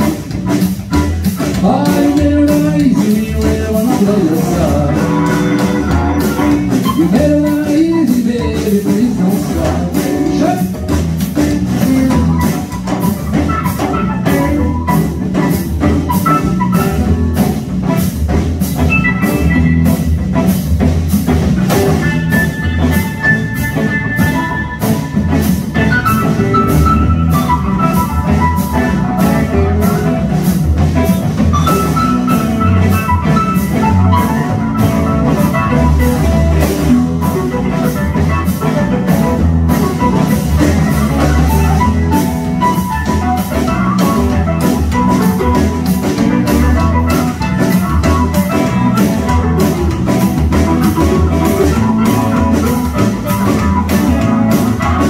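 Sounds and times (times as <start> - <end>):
bass guitar: 0.0 - 55.0
drum kit beat: 0.0 - 55.0
electric guitars: 0.0 - 55.0
keyboard: 0.0 - 55.0.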